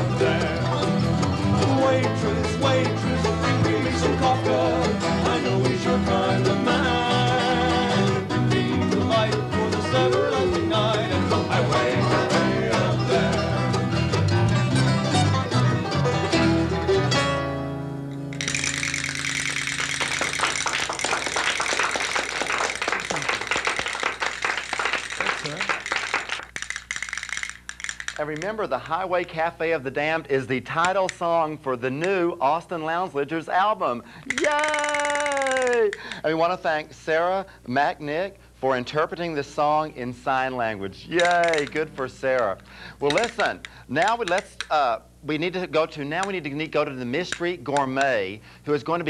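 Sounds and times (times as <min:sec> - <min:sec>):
country string band playing: 0:00.0 - 0:21.9, 0:38.8 - 0:44.8
applause: 0:19.4 - 0:26.6, 0:34.3 - 0:35.8.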